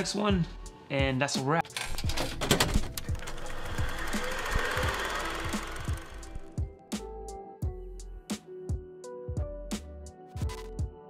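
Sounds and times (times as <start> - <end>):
rapid rattling static: 2.9 - 6.6.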